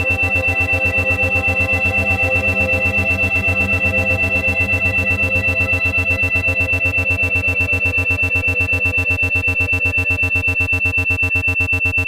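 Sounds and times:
ambient synthesizer chords: 0.0 - 12.0
pulsing beat tones: 0.0 - 12.0
steady high tone: 0.0 - 12.0.

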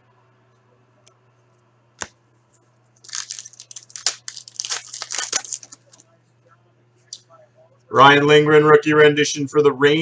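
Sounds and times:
foil wrapper tearing and crinkling: 3.0 - 6.0.

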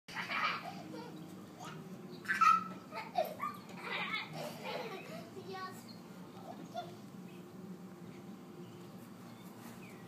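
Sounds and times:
young children babbling and calling: 0.2 - 7.2.

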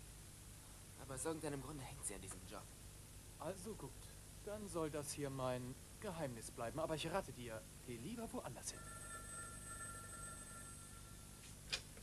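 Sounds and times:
telephone ringing: 8.7 - 11.5.

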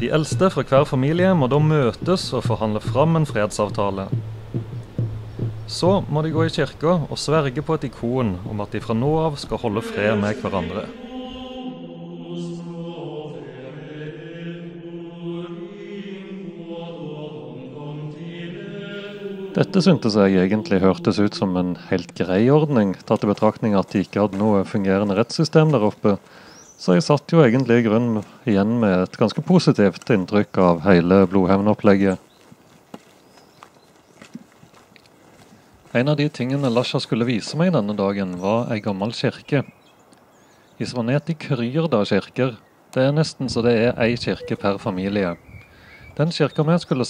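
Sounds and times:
male chanting: 0.0 - 4.2, 5.7 - 26.2, 43.4 - 45.4
footsteps on gravel: 20.4 - 26.4, 29.1 - 38.6.

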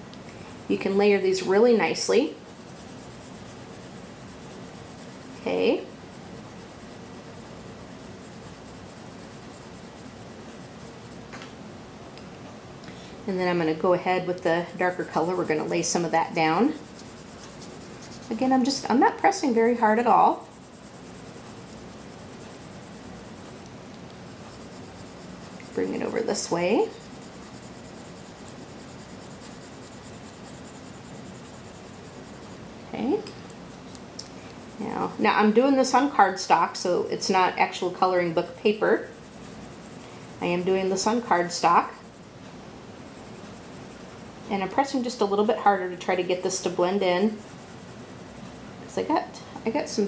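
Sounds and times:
pencil scratching on paper: 2.5 - 11.2, 14.6 - 23.6, 24.3 - 32.6, 39.0 - 42.3, 43.0 - 45.0, 45.8 - 48.6.

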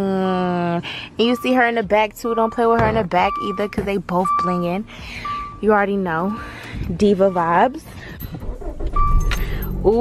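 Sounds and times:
short electronic beep: 8.9 - 9.4.

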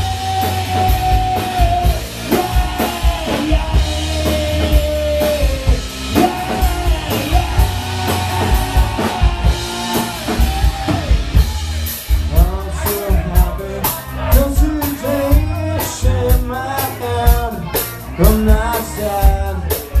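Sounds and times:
drum kit hits: 0.0 - 13.6
live rock band: 0.0 - 20.0.

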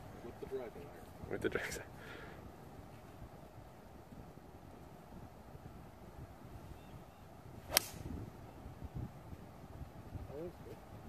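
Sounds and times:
golf club striking ball: 7.7 - 8.2.

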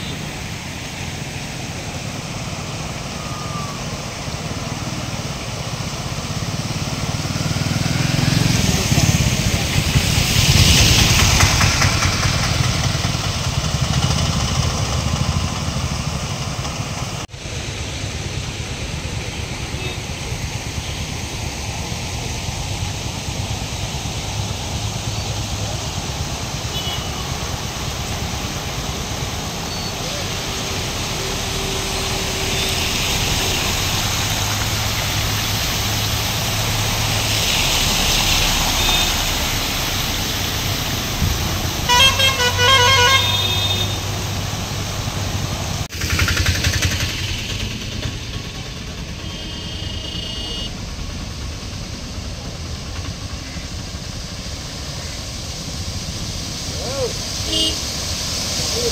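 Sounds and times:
vehicles driving through floodwater: 0.0 - 58.9
vehicle horn beeping rapidly: 26.7 - 27.4, 41.9 - 44.2, 49.2 - 50.8, 57.5 - 57.8.

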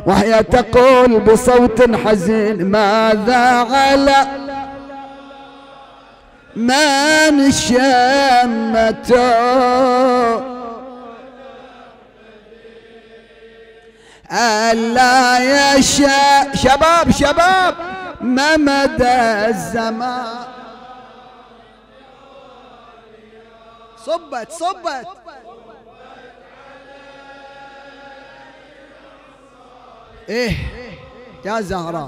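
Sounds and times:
men chanting low held notes: 0.0 - 32.0
solo reciter: 0.0 - 32.0.

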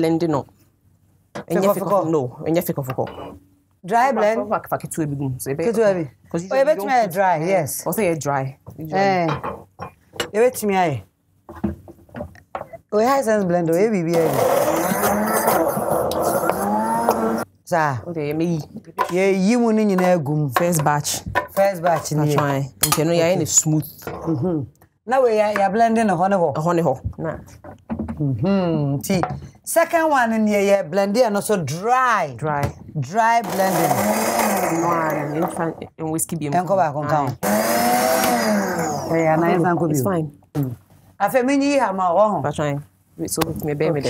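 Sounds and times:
blender chopping vegetables: 14.1 - 17.4, 33.4 - 35.7, 37.3 - 39.2
blender motor whine: 14.1 - 17.5, 33.5 - 35.4, 37.4 - 39.2.

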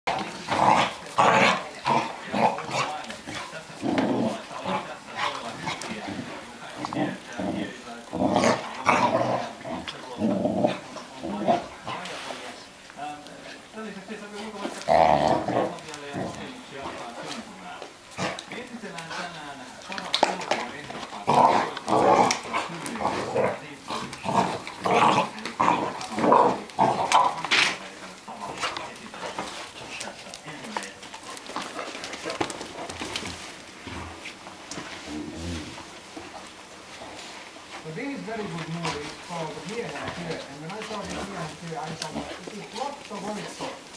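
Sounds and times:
puppies growling and yapping: 0.1 - 12.2
dogs growling while play-fighting: 0.1 - 12.8, 14.3 - 43.9.

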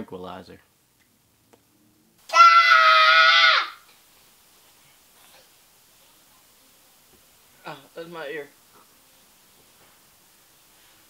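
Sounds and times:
shrill scream: 2.2 - 3.9.

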